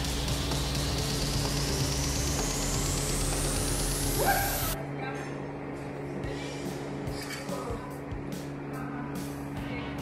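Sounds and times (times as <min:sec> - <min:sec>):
held low bass: 0:00.0 - 0:04.8
hiss rising in pitch: 0:00.0 - 0:04.8.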